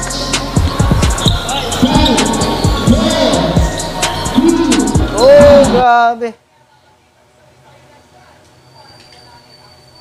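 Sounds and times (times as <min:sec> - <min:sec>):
background music: 0:00.0 - 0:05.9.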